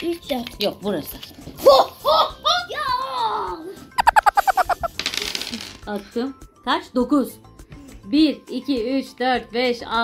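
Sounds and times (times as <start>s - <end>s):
high-pitched squeaky pulses: 4.0s - 5.0s
dice rattling on table: 4.0s - 5.8s.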